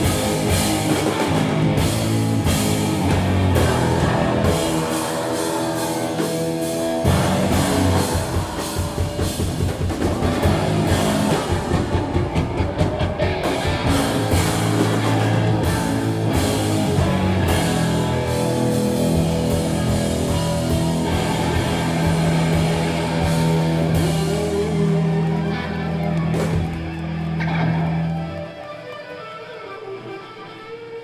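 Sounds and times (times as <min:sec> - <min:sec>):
drum kit: 0:00.0 - 0:28.1
bass guitar: 0:00.0 - 0:31.0
electric guitar: 0:00.0 - 0:31.0.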